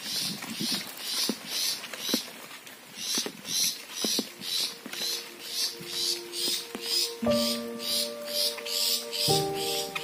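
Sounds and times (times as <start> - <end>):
footsteps on wet pavement: 0.0 - 10.0.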